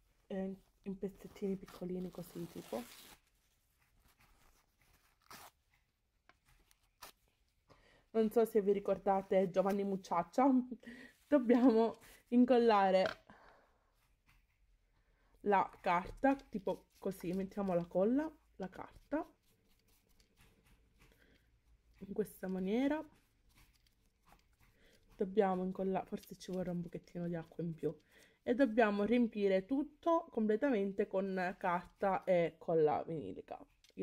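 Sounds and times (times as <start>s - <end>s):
paper tearing by hand: 2.0s - 3.4s, 4.0s - 5.7s.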